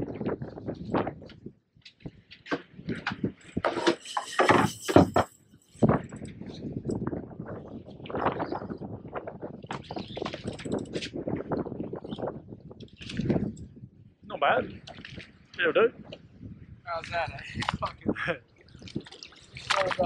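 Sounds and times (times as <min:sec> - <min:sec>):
knocks and rattles: 0:02.5 - 0:06.3.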